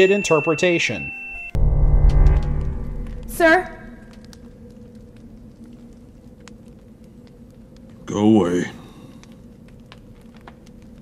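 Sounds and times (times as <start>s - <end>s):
people speaking: 0.0s - 1.2s, 3.3s - 4.0s
low steady hum: 0.9s - 11.0s.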